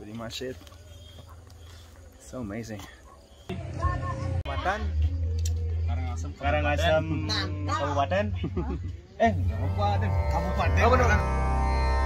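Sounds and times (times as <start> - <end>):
people talking in a group: 0.1 - 11.4.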